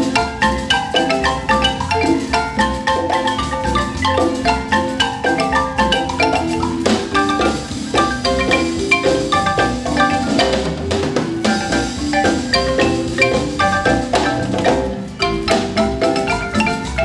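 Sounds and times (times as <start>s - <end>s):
marimba music over loudspeaker: 0.0s - 17.0s.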